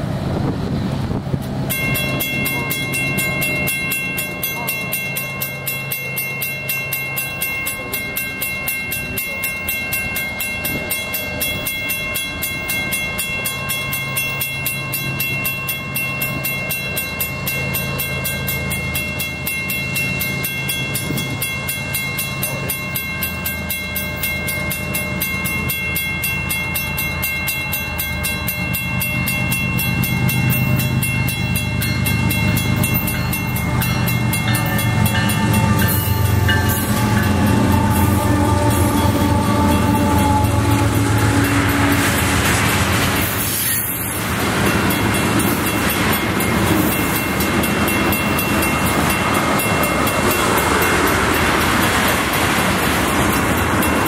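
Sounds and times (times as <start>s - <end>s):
crossing warning bell ringing: 0.0s - 54.0s
locomotive rumble: 0.0s - 54.0s.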